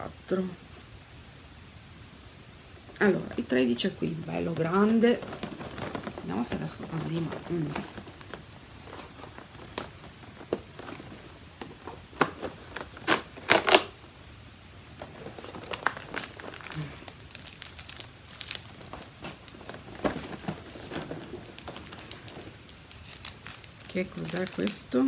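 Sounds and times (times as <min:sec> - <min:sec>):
cardboard crinkling and tearing: 0:04.6 - 0:14.0, 0:14.9 - 0:25.0.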